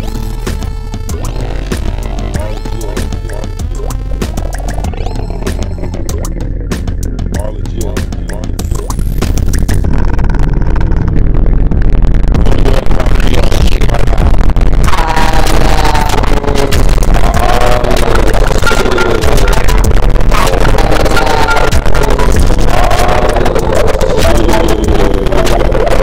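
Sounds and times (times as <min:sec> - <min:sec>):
deep bass note: 0:00.0 - 0:26.0
harsh noise music hiss and crackle: 0:00.0 - 0:26.0.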